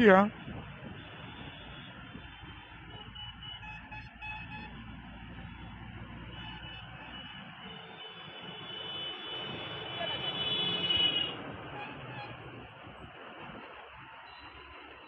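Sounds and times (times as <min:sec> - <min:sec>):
cars passing: 0:00.0 - 0:15.0
motorbikes passing: 0:00.0 - 0:15.0.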